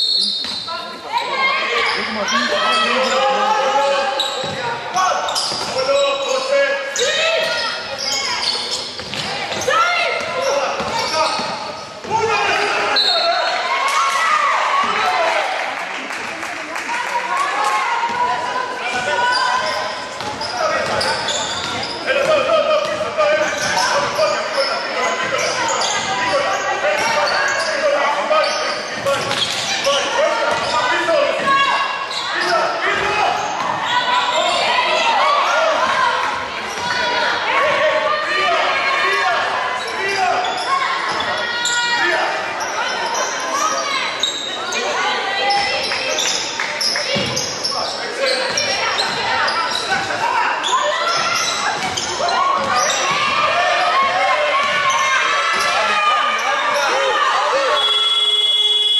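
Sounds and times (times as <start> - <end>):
voices calling out: 0.0 - 15.8, 16.8 - 58.9.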